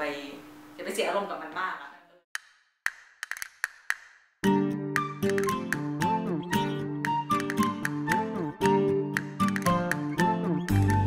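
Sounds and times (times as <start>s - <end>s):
sharp wood-block knocks: 2.4s - 4.2s.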